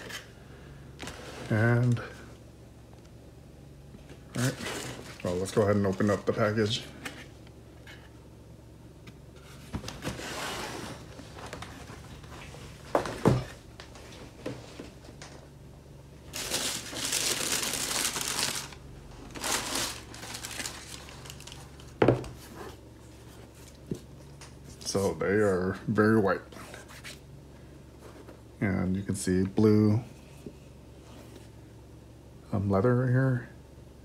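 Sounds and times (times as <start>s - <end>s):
tissue paper crinkling: 16.3s - 21.9s.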